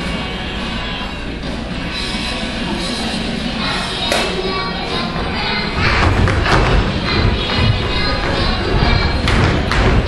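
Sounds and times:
background music: 0.0s - 10.0s
children jumping on wooden stage: 5.8s - 10.0s.

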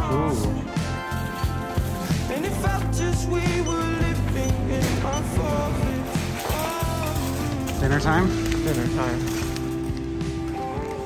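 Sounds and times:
rock song with singing: 0.0s - 8.6s.

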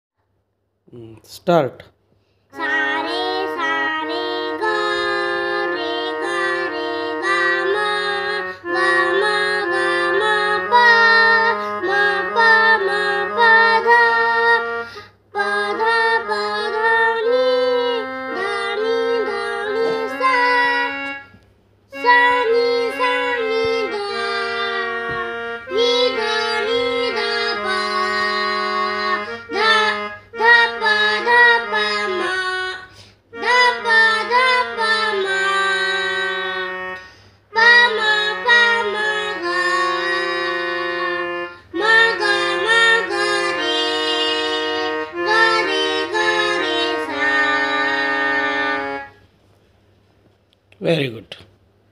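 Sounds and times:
electronic keyboard melody: 2.6s - 49.2s.

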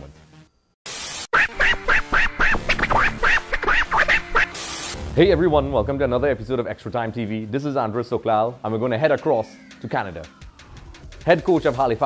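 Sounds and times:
burst of hiss: 4.5s - 5.0s.

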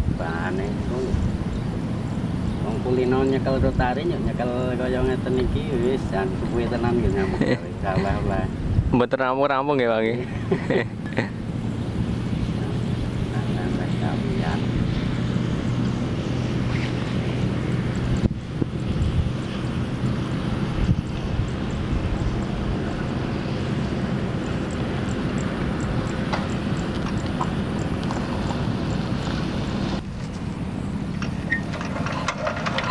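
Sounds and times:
diesel engine droning: 0.0s - 32.9s.

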